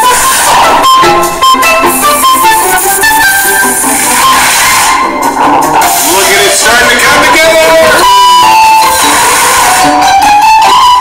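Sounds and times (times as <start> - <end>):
instrumental background music: 0.0 - 11.0.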